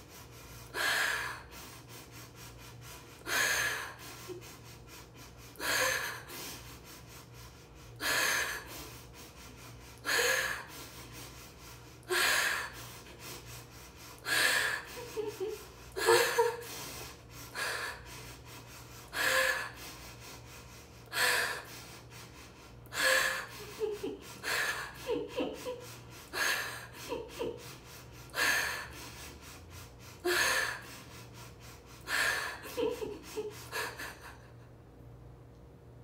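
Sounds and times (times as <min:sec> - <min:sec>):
woman gasping breaths: 0:00.0 - 0:34.6.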